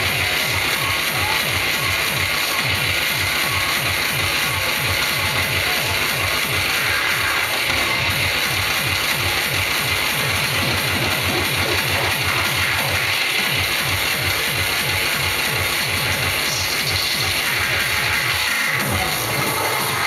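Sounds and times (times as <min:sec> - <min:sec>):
hardcore electronic dance music: 0:00.0 - 0:20.0.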